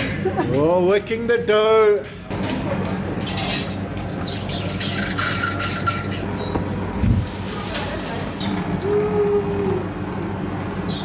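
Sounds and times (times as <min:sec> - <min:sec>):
dough sheeter humming: 0:00.0 - 0:11.0.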